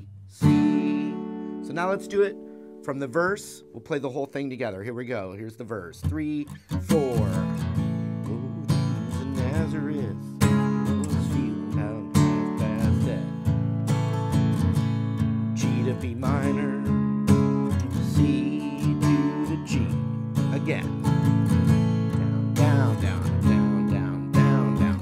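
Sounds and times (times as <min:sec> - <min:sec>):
acoustic guitar strumming chords: 0:00.0 - 0:04.4, 0:05.9 - 0:25.0.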